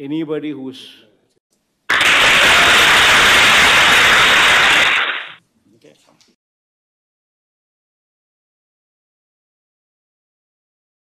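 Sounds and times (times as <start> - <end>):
loud static hiss: 1.9 - 5.4.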